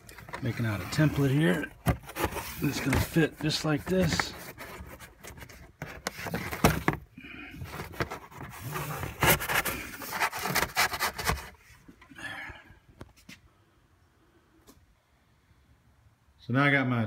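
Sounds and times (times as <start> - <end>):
cardboard scraping and rubbing: 0.0 - 11.9.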